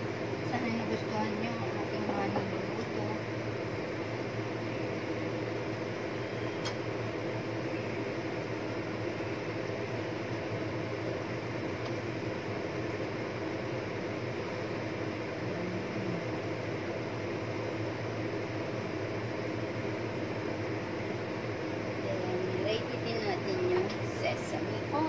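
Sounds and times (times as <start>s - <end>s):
low hum: 0.0s - 25.0s.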